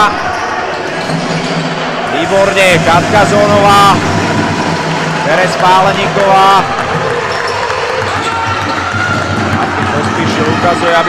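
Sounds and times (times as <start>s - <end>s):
basketball crowd noise: 0.0s - 11.0s
basketball bouncing: 6.8s - 10.8s.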